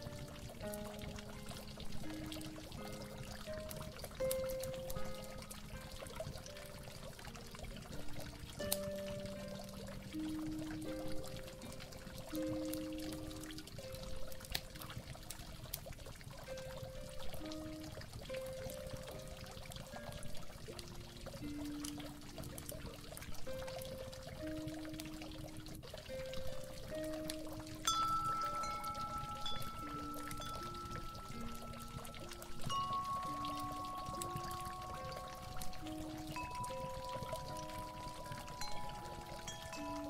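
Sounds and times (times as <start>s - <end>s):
gentle instrumental melody: 0.0s - 40.0s
water pouring and trickling: 0.0s - 40.0s
higher ringing notes: 27.3s - 40.0s.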